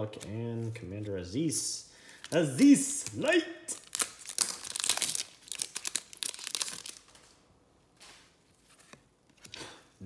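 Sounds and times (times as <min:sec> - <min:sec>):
foil wrapper crinkling and tearing: 0:02.3 - 0:07.3.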